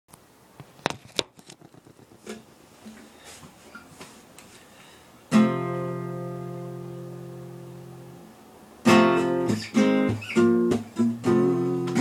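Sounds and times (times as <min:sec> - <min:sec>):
acoustic guitar chord strummed: 0:05.3 - 0:12.0.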